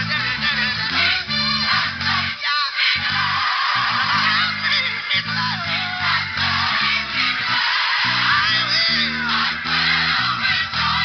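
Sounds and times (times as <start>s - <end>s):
electric bass low notes: 0.0s - 2.4s, 3.0s - 11.0s
gospel music: 0.0s - 11.0s.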